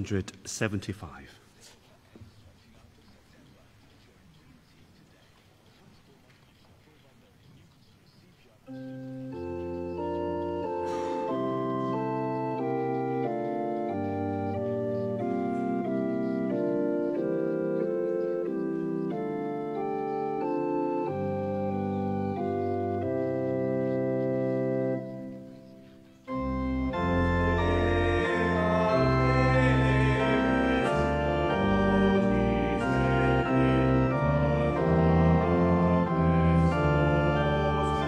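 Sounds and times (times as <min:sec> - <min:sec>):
church organ playing hymn chords: 0:08.4 - 0:38.0.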